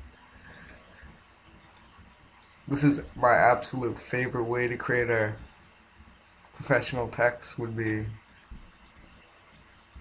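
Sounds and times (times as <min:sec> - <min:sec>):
computer mouse clicks: 0:07.8 - 0:09.8.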